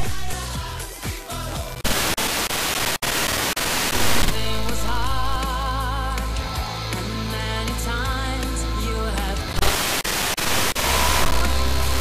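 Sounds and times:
radio static hiss: 1.8s - 5.4s, 9.5s - 12.0s.

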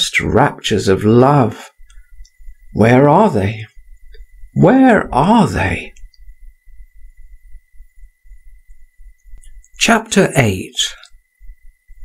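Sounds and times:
high-pitched whine: 0.0s - 12.0s
low throbbing rumble: 3.6s - 9.7s.

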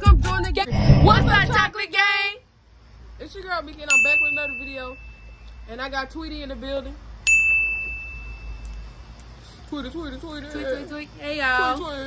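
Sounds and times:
bright bell-like ding: 3.9s - 5.4s, 7.3s - 8.8s.

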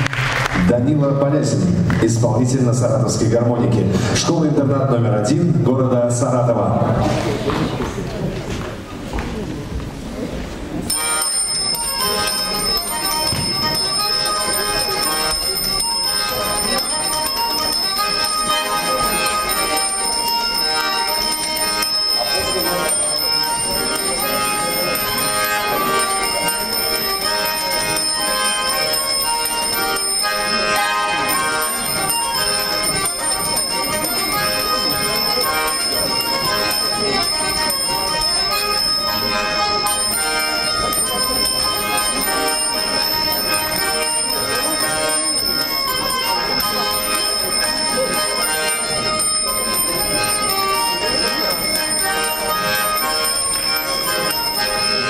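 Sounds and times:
button accordion playing tune: 10.7s - 55.0s
small bells ringing: 10.8s - 55.0s.

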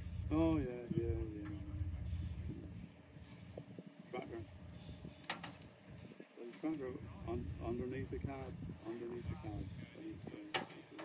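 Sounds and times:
distant voices talking: 0.0s - 11.0s.

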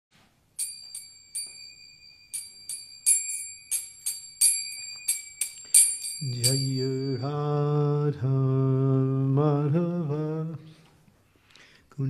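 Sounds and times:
hand cymbals ringing strikes: 0.6s - 7.6s.

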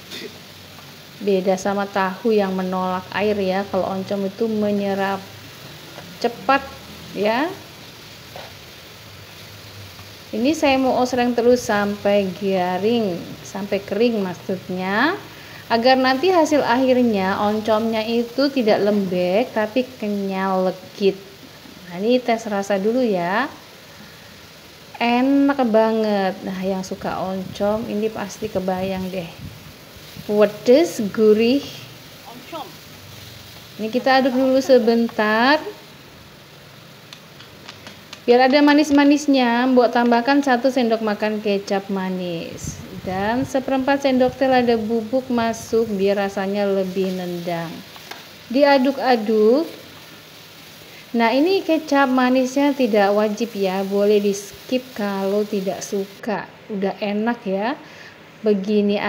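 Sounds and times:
food sizzling in a wok: 0.0s - 59.0s.

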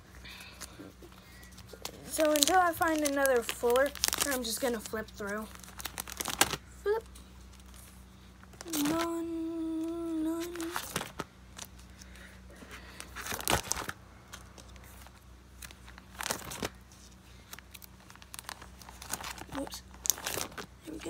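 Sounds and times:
plastic pages crinkling: 0.4s - 21.0s.

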